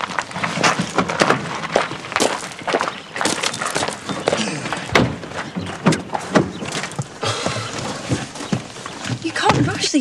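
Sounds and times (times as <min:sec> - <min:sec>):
clip-clopping steps: 0:00.0 - 0:10.0.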